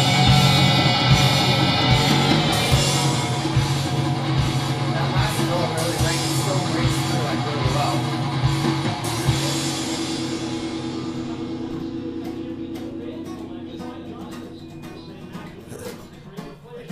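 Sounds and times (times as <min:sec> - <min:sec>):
acoustic guitar strumming: 0:00.0 - 0:16.9.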